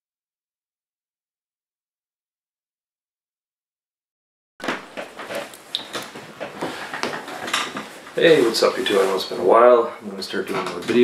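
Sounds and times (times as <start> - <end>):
small clattering knocks and clicks: 4.6 - 8.2.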